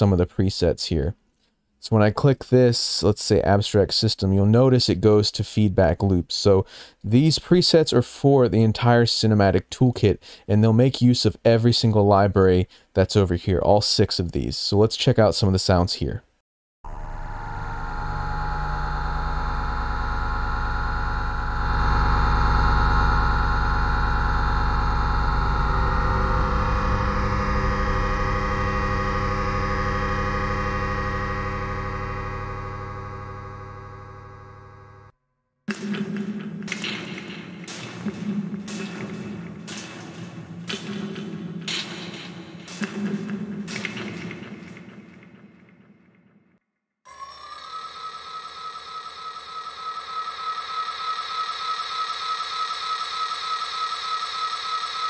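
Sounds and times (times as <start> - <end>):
rhythmic pulsing synth hits: 16.9 - 34.5, 35.7 - 46.5
sustained synth drone: 16.9 - 35.1, 47.1 - 55.0.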